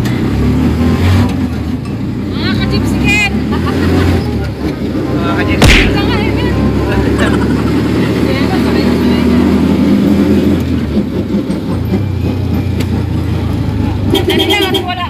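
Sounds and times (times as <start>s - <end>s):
vehicle engine and road drone: 0.0s - 15.0s.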